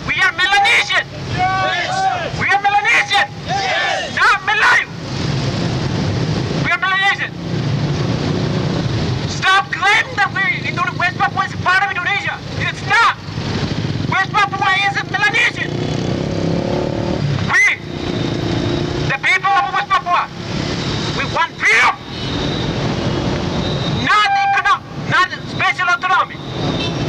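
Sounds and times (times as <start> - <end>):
man shouting through megaphone: 0.0 - 5.0, 6.6 - 7.4, 9.3 - 13.2, 14.1 - 15.8, 17.4 - 18.0, 19.0 - 20.4, 21.2 - 22.1, 24.0 - 26.5
motorcycles: 0.0 - 27.0
street traffic: 0.0 - 27.0.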